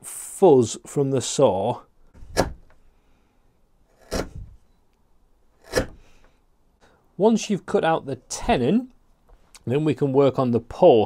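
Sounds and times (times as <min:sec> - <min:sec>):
hand chisel paring wood: 0:02.1 - 0:02.8, 0:03.9 - 0:04.5, 0:05.6 - 0:06.2.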